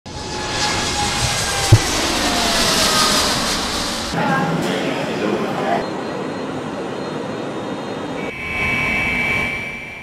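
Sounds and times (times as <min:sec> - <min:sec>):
jet engines at takeoff: 0:00.0 - 0:09.7
sharp low thump: 0:01.6 - 0:02.0.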